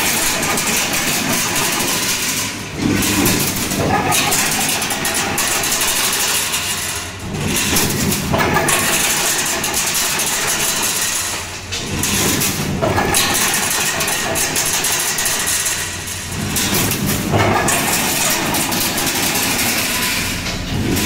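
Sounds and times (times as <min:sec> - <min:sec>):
fence making machine running: 0:00.0 - 0:21.0.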